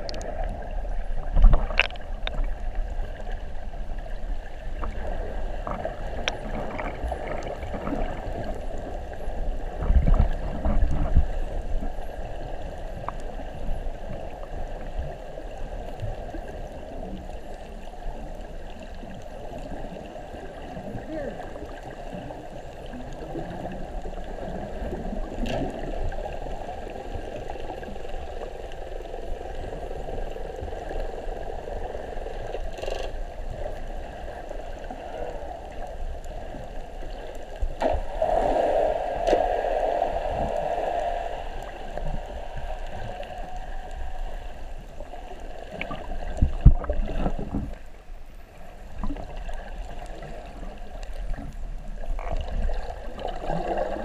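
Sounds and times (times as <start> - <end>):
underwater rush of water: 0.0 - 54.0
bubbling water: 4.7 - 47.9, 48.8 - 54.0.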